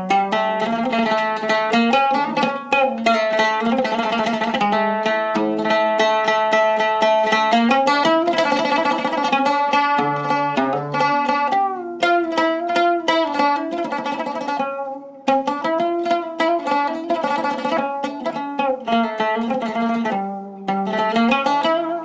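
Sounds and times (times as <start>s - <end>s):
oud plucked with plectrum: 0.0s - 22.0s.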